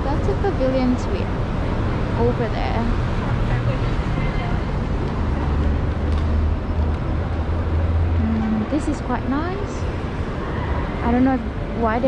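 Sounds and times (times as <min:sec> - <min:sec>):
street traffic rumble: 0:00.0 - 0:12.0
people's voices: 0:08.2 - 0:09.9.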